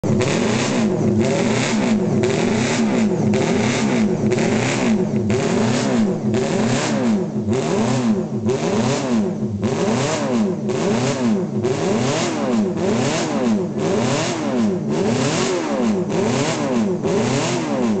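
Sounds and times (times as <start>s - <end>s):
motorcycle engine revving: 0.0s - 18.0s.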